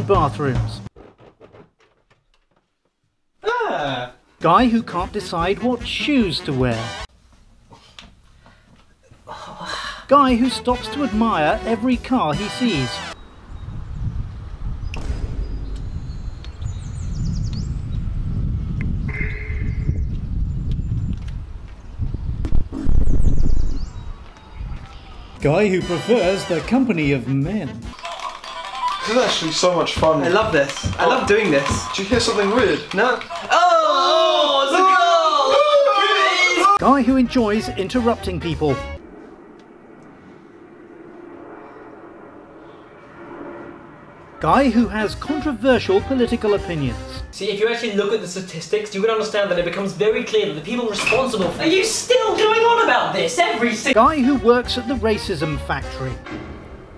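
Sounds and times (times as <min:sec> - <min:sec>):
distant engine rumble: 0:13.1 - 0:19.2, 0:36.8 - 0:47.3
wind rumbling on microphone: 0:13.2 - 0:25.4
faint hum: 0:37.8 - 0:45.4.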